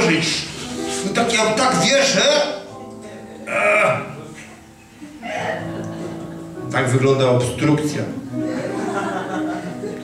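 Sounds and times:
man straining vocal noise: 0:03.4 - 0:04.3.

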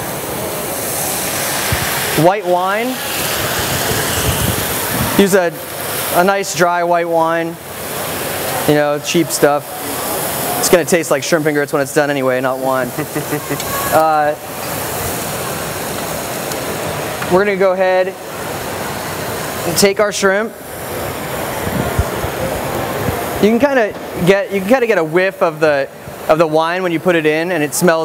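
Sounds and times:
pan sizzling: 0:00.0 - 0:26.3.

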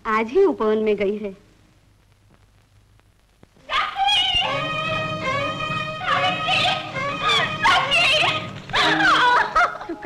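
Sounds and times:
young woman sobbing: 0:08.7 - 0:10.0.

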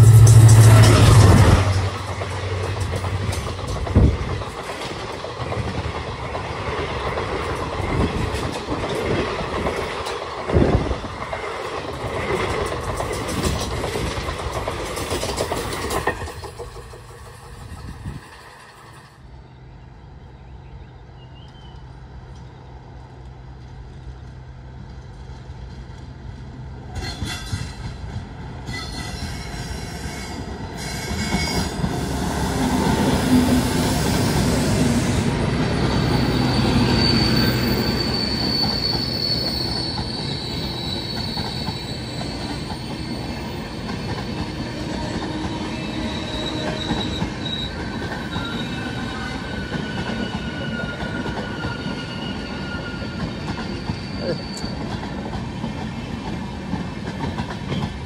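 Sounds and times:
train wheels rushing on rails: 0:00.0 - 0:19.4, 0:21.4 - 0:58.0
locomotive passing close by: 0:00.0 - 0:19.9, 0:21.7 - 0:58.0
high wheel squeals: 0:34.5 - 0:55.2.

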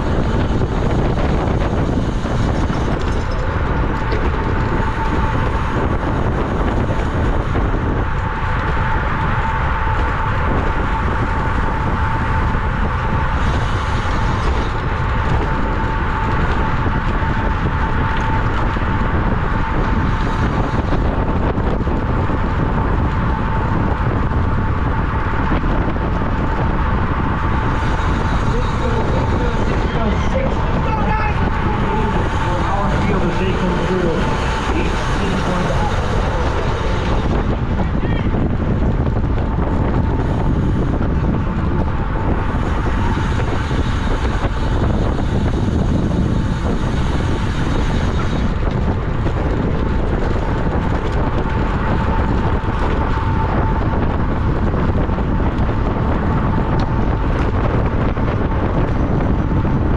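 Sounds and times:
wind rushing over microphone: 0:00.0 - 0:59.9
faint voices: 0:28.0 - 0:38.8.

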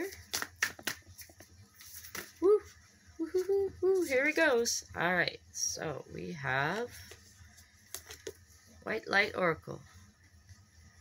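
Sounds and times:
cards shuffled by hand: 0:00.0 - 0:02.5, 0:07.0 - 0:08.5.

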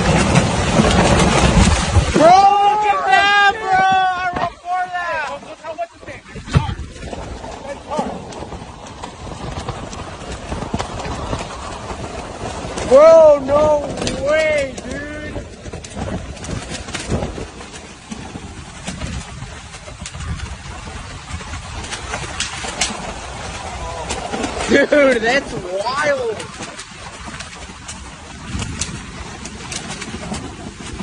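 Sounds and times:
wind and rain on microphone: 0:00.0 - 0:31.0
wind buffeting knocks: 0:00.0 - 0:31.0
person exclaiming loudly: 0:02.2 - 0:05.2.

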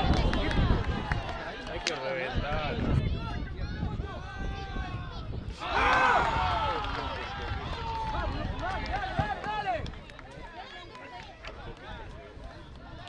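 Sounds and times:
voices shouting: 0:05.6 - 0:09.8.

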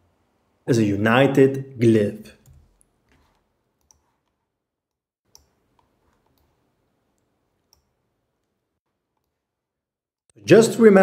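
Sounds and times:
computer mouse clicks: 0:02.4 - 0:04.4, 0:05.3 - 0:09.4.

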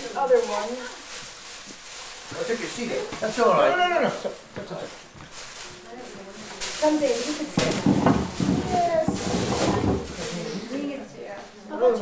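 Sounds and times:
people talking: 0:00.0 - 0:01.0, 0:05.8 - 0:12.0
wrapping paper rustling and tearing: 0:00.0 - 0:11.4.

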